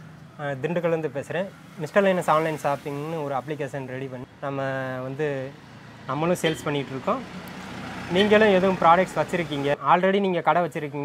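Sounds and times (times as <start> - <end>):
faint steady background noise: 0.0 - 11.0
man speaking: 0.4 - 7.2, 8.1 - 11.0.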